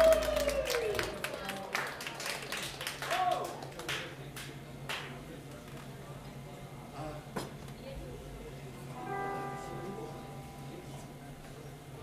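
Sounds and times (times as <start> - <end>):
low sound system hum: 0.0 - 12.0.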